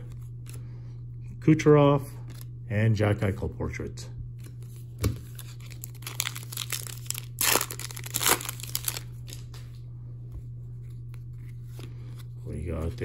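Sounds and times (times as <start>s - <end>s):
foil wrapper crinkling and ripping: 5.2s - 9.6s.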